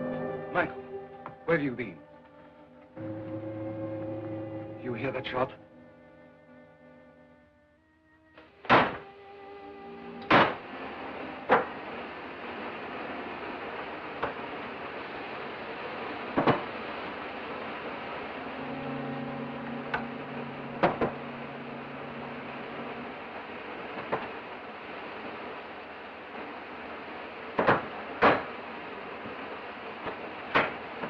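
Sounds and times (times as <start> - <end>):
low hum: 0.0 - 31.0
steam hissing: 8.5 - 31.0.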